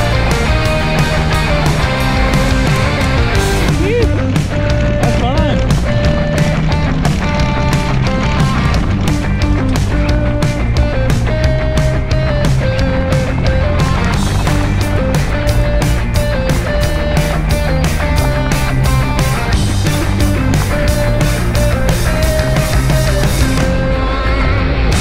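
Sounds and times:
rock music with drum beat: 0:00.0 - 0:25.0.

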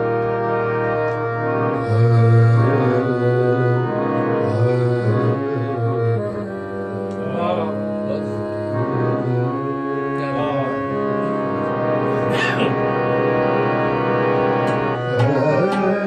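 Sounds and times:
harmonium playing chords: 0:00.0 - 0:16.0
man's voice: 0:07.1 - 0:11.4, 0:12.3 - 0:12.8, 0:15.1 - 0:16.0.

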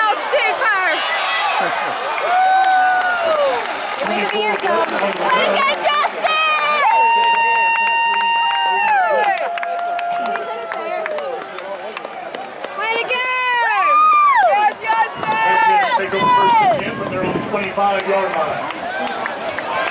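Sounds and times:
spectator cheering and whooping: 0:00.0 - 0:04.0, 0:05.4 - 0:11.4, 0:12.8 - 0:16.9.

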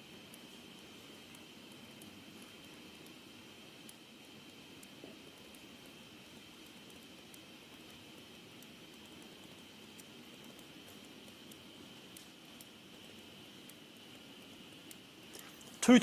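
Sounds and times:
faint high whine: 0:00.0 - 0:16.0
room hiss: 0:00.0 - 0:16.0
stylus ticking on a screen: 0:00.0 - 0:16.0.

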